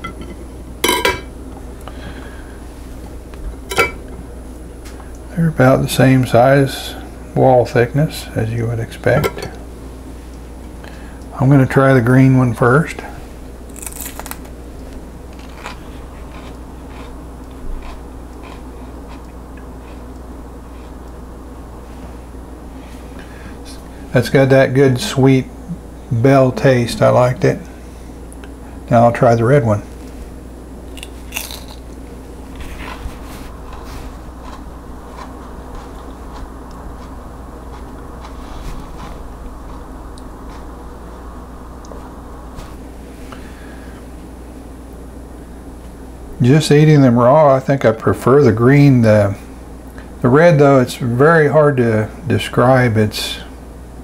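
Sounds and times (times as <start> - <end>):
steady low hum: 0.0 - 54.0
crisp bite into pepper: 13.7 - 14.5, 30.9 - 31.8
crunchy chewing: 13.7 - 21.2, 30.0 - 41.2.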